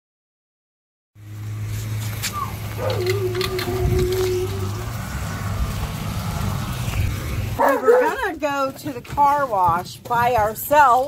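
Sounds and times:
dog whining: 0:02.3 - 0:04.8.

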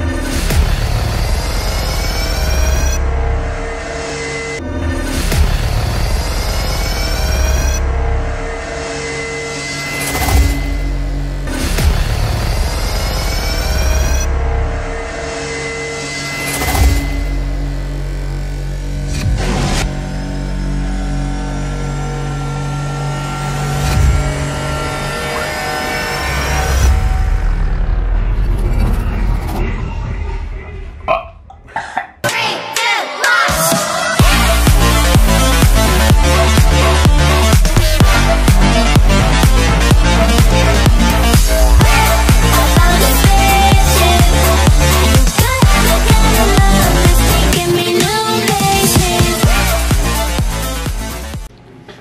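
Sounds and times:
dramatic electronic music: 0:00.0 - 0:51.5
man gulping and belching: 0:31.1 - 0:32.2.

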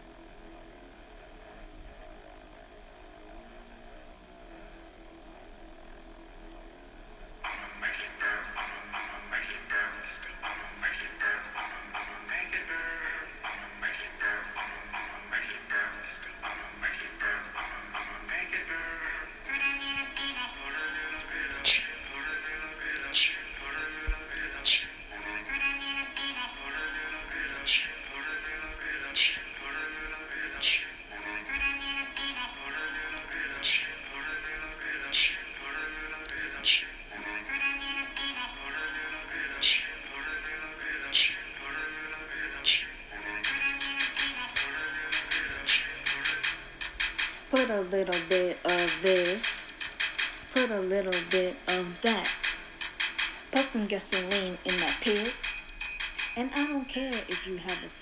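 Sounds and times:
song with beat and vocal hook: 0:07.4 - 0:58.0
sharp percussion hits: 0:21.6 - 0:22.0, 0:23.1 - 0:23.4, 0:24.6 - 0:25.0, 0:27.4 - 0:28.0, 0:29.2 - 0:29.5, 0:30.6 - 0:31.0.

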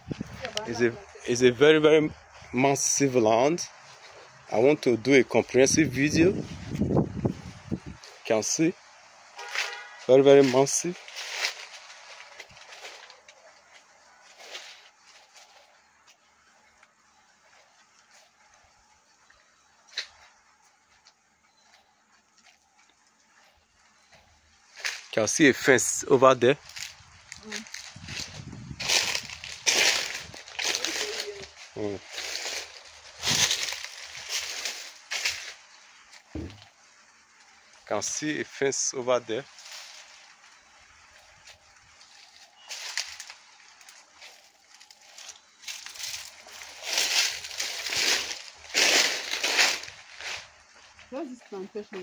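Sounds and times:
footsteps crunching on dry leaves: 0:00.0 - 0:38.2, 0:39.4 - 0:52.0.

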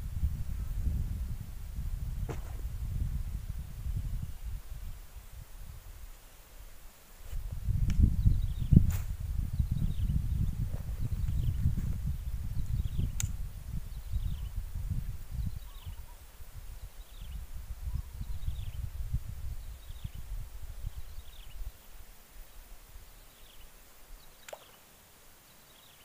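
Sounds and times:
wind buffeting microphone: 0:00.0 - 0:06.1, 0:07.2 - 0:21.8.

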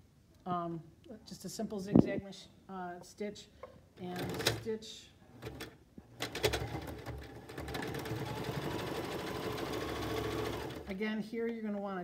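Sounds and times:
sewing machine running: 0:05.4 - 0:10.9.

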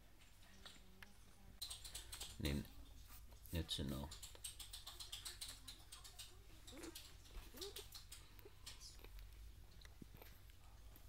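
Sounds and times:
puppies suckling wet clicks: 0:01.6 - 0:02.6, 0:03.4 - 0:11.0.

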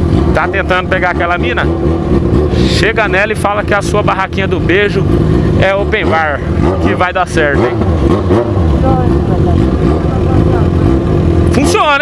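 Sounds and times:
motorcycle engine deep rumble: 0:00.0 - 0:12.0.

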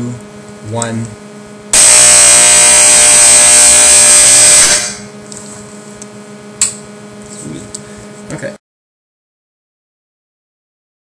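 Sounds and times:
fire alarm horn buzzing: 0:01.7 - 0:05.1.

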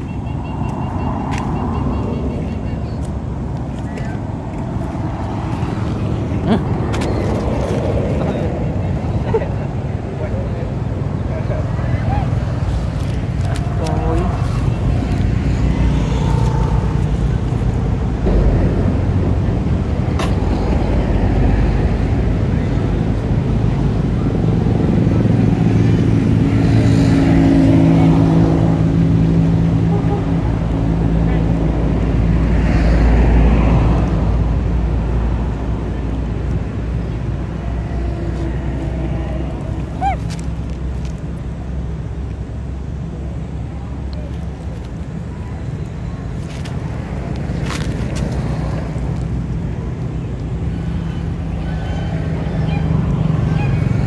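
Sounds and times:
vehicle engine running: 0:10.2 - 0:28.7.

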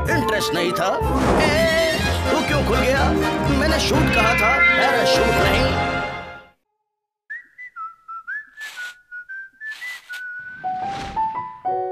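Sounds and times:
closing music: 0:00.9 - 0:06.3
person whistling a tune: 0:07.3 - 0:10.7
short swishing noises: 0:08.5 - 0:09.0, 0:09.6 - 0:11.3.

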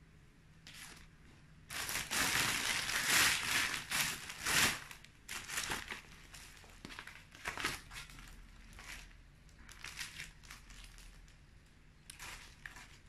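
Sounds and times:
garments rustling and crinkling: 0:00.7 - 0:13.0.

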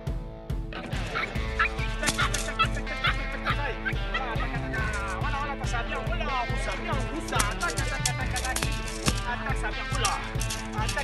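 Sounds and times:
rock music with steady beat: 0:00.0 - 0:11.0
puppy yipping and squealing: 0:01.1 - 0:03.2.

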